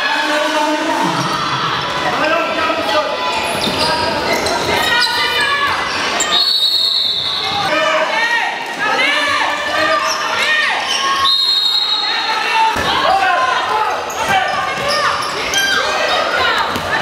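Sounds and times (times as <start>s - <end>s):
long steady whistle: 6.3s - 7.4s, 11.2s - 12.2s.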